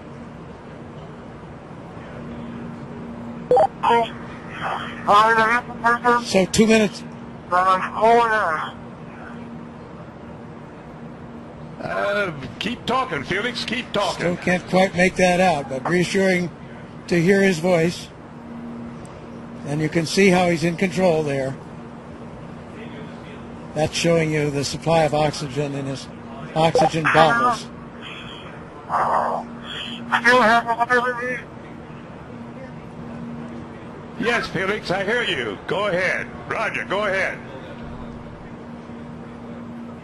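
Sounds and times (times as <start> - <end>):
steady low hum: 0.0 - 40.0
muffled voice over radio: 3.8 - 9.4, 26.6 - 31.5
radio hiss: 4.0 - 6.2, 26.7 - 31.4.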